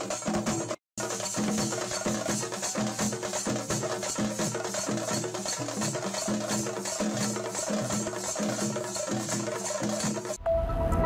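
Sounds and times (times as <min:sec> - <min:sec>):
drums beaten with sticks: 0:00.0 - 0:10.4.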